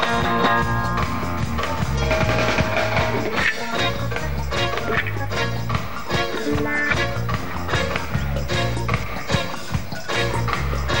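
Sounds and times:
live reggae band playing: 0.0s - 11.0s.

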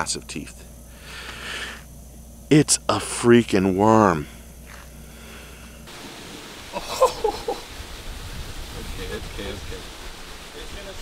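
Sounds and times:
outdoor background hiss: 0.0s - 11.0s
person exclaiming: 6.8s - 7.6s.

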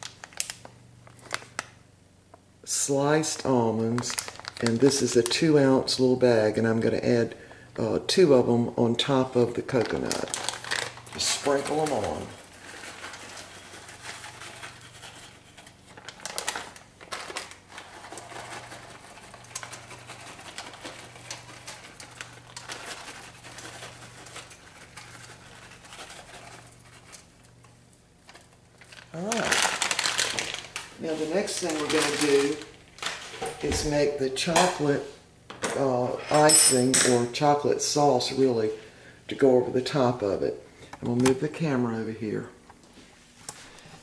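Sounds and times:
plastic bag crinkling: 0.0s - 1.8s, 2.8s - 6.2s, 9.0s - 33.6s
person speaking: 2.6s - 10.5s, 11.1s - 12.4s, 29.1s - 29.8s, 31.0s - 32.8s, 33.6s - 42.6s.

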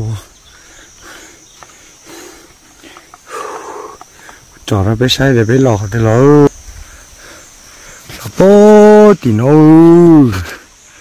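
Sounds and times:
man hollering: 8.4s - 10.5s.

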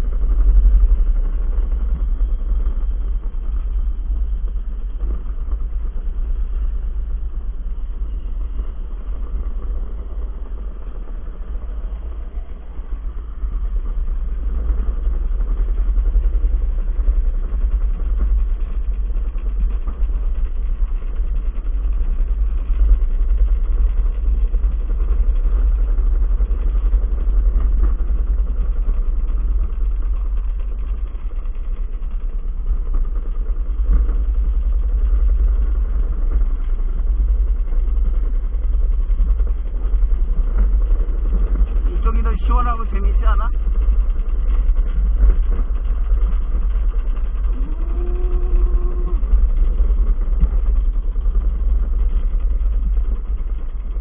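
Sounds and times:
luge cart wheels rumbling on concrete: 0.0s - 54.0s.

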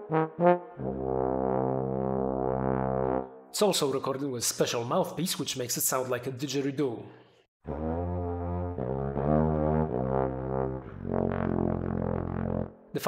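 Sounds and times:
low buzzy trombone notes: 0.0s - 3.4s, 7.6s - 12.8s.

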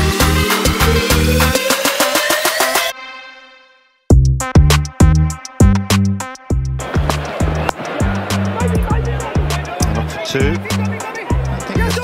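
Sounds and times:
electronic music with steady beat: 0.0s - 2.9s, 4.1s - 12.0s.

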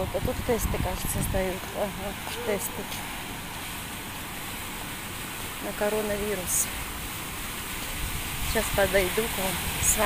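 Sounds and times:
outdoor hiss and rumble: 0.0s - 10.0s.

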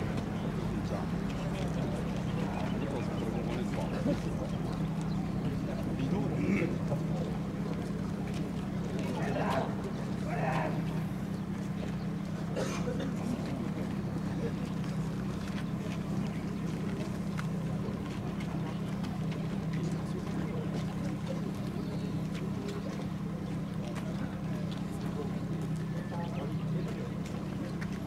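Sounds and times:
small pump engine droning: 0.0s - 28.0s.

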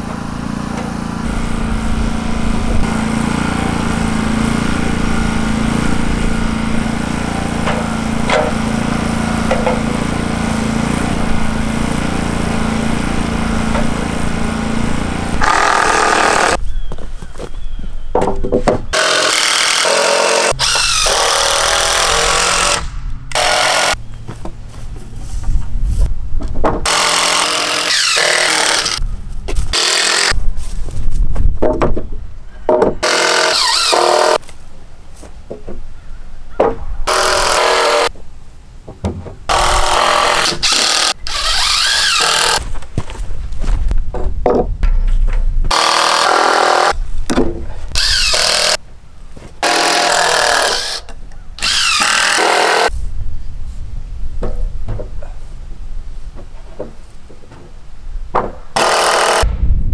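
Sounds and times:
power driver driving screws: 15.3s - 16.6s, 18.9s - 24.0s, 26.8s - 29.0s, 33.0s - 34.4s, 39.5s - 42.6s, 45.7s - 47.0s, 48.0s - 48.8s, 49.6s - 52.9s, 58.8s - 59.4s.

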